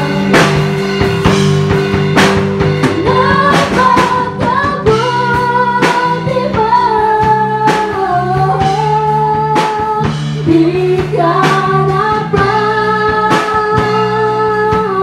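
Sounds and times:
woman singing: 0.0 - 0.8, 2.8 - 15.0
drum kit: 0.0 - 15.0
electric bass: 0.0 - 15.0
electric guitar: 0.0 - 15.0.

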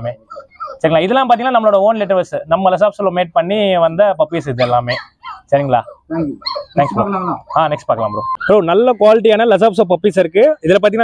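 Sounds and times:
puppies barking and whimpering: 0.0 - 2.3, 4.2 - 9.8
man talking: 0.0 - 11.0.

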